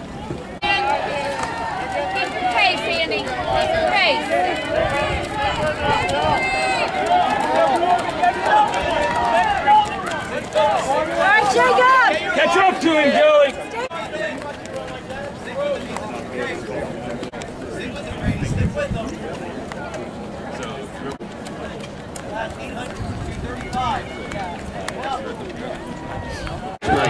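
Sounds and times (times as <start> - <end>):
spectators shouting and cheering: 0.0 - 18.5, 21.7 - 27.0
scattered voices: 0.0 - 27.0.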